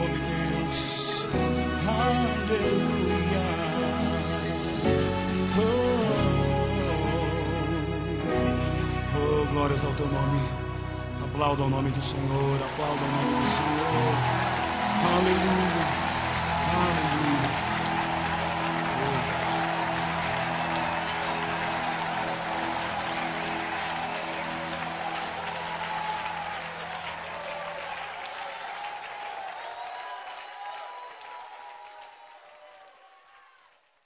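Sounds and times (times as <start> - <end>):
crowd applauding and cheering: 0.0 - 10.8, 11.5 - 34.0.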